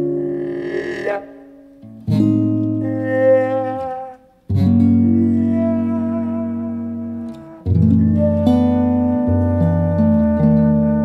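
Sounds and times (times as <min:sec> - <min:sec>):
muted trombone sliding: 0:00.0 - 0:01.8.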